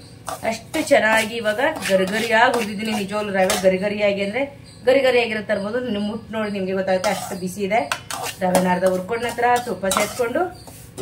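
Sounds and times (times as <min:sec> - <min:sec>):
metal spatula scraping a pan: 0:00.2 - 0:03.9, 0:06.9 - 0:11.0.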